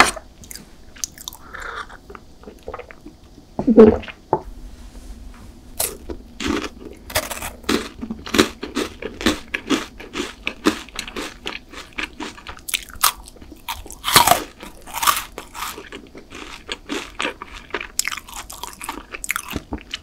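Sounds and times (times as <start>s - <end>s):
chocolate bar crunching: 5.8s - 20.0s.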